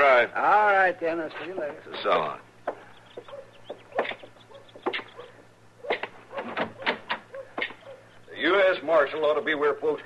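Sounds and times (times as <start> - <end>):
chickens clucking: 2.0 - 8.2.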